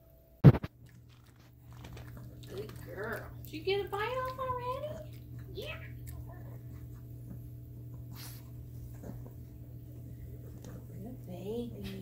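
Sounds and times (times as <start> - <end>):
dog chewing and licking: 0.6 - 11.0.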